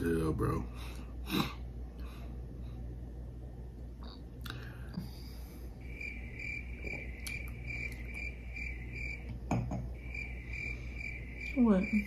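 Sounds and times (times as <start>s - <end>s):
cricket chirping: 5.8s - 12.0s.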